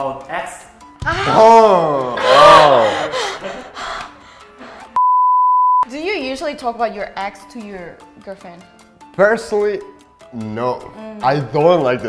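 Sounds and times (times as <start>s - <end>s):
censor bleep: 5.0s - 5.9s.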